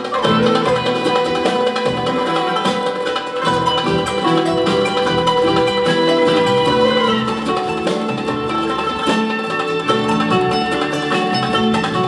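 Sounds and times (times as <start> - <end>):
plucked string ensemble with violin: 0.0 - 12.0.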